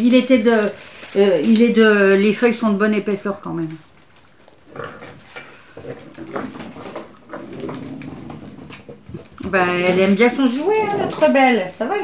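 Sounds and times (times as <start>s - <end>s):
dog playing with toy: 0.7s - 12.0s.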